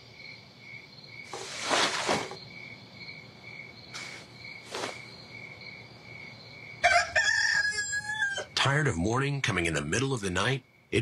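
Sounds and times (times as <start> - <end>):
crickets chirping: 0.0 - 11.0
soft rustles: 1.3 - 2.4, 4.0 - 5.1
rooster crowing: 6.8 - 8.5.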